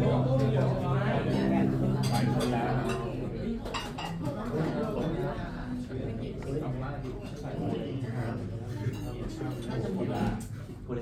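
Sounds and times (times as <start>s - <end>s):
murmur of voices: 0.0s - 11.0s.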